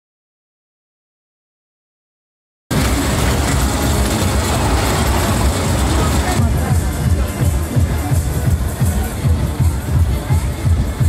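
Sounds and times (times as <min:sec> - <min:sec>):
roller coaster rumbling on track: 0:02.7 - 0:11.0.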